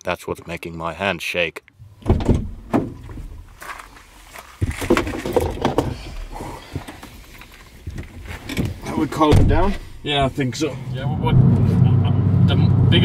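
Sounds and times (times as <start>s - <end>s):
car door thud: 2.0s - 3.4s, 9.2s - 9.9s.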